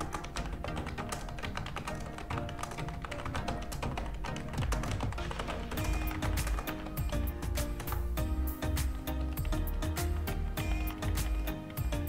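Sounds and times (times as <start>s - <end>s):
background music: 0.0s - 12.0s
keyboard typing: 0.0s - 12.0s.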